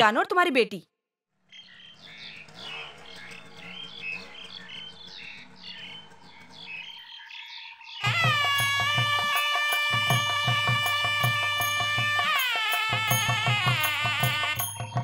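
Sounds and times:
birds chirping: 1.5s - 15.0s.

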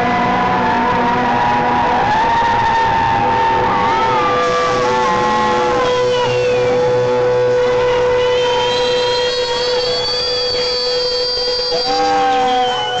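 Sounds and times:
high whistling tones: 3.9s - 13.0s.

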